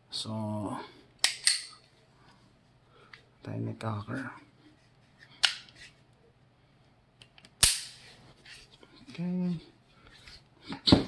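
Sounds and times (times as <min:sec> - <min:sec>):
pistol action clicks: 0:07.2 - 0:08.0
pistol hammer metallic snap: 0:07.6 - 0:08.0.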